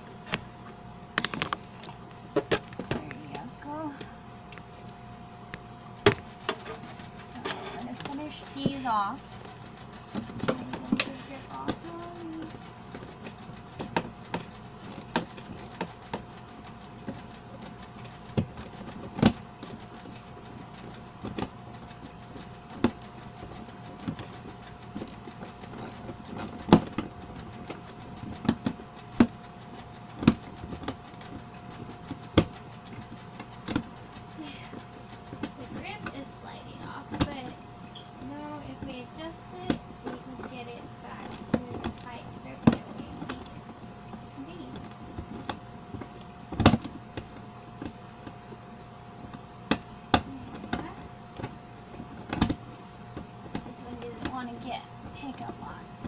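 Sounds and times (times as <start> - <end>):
metal scraping on plastic: 6.2 - 21.3
screwdriver clicking on bolts: 14.9 - 15.9, 25.0 - 27.2, 41.3 - 43.6.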